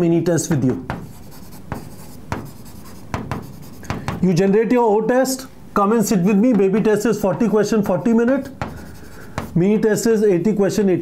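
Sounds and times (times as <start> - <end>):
marker scratching on a board: 0.6 - 4.3, 6.2 - 9.9.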